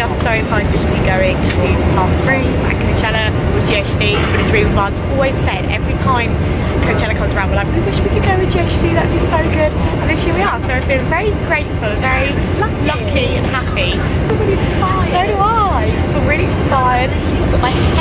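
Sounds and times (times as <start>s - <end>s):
airliner cabin drone: 0.0s - 18.0s
woman talking: 0.0s - 18.0s.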